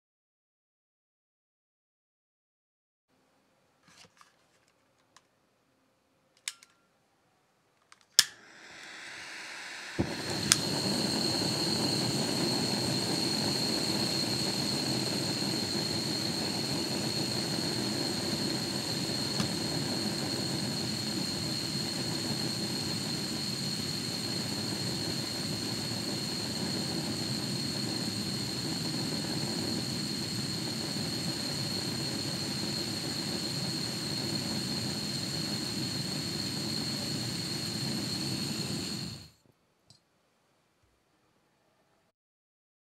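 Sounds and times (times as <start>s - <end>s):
burner ignition click: 8.0s - 39.3s
gas burner roaring: 8.2s - 39.4s
gas hissing: 8.2s - 39.4s
high whistle: 8.4s - 39.3s.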